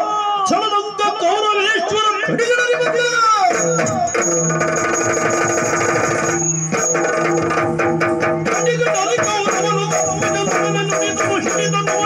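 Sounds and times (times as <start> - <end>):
fast drumming: 2.3 - 12.0.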